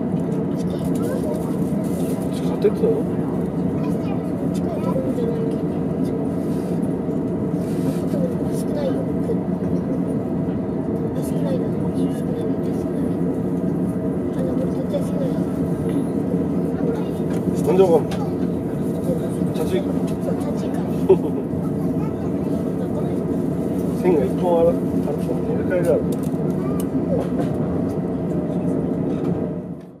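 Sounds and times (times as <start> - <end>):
train interior hum: 0.0 - 30.0.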